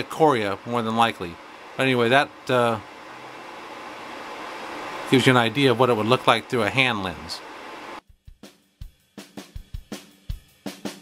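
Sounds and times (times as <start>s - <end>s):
steady room noise hiss: 0.0s - 8.0s.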